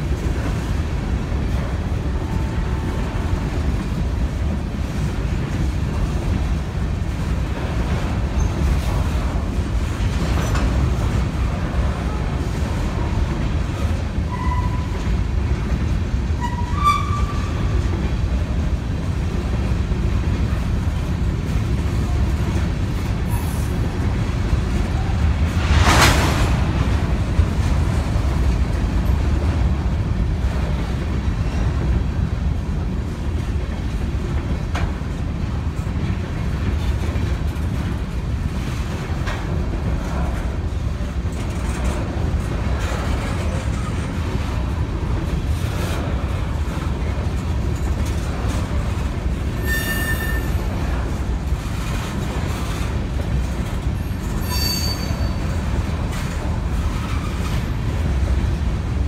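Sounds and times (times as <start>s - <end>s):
train wheels rumbling on rails: 0.0s - 59.0s
high metallic squeals: 49.6s - 50.6s, 54.3s - 55.5s.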